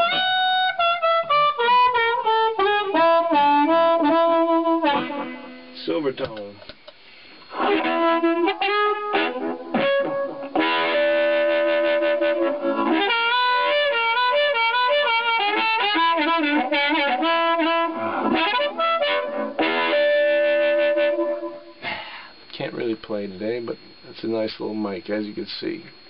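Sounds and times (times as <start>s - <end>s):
amplified blues harmonica: 0.0s - 5.8s, 7.0s - 22.5s.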